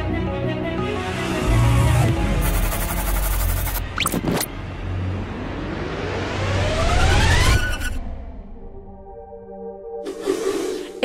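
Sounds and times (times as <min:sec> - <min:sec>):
rising pitched sweep: 0:03.8 - 0:08.8.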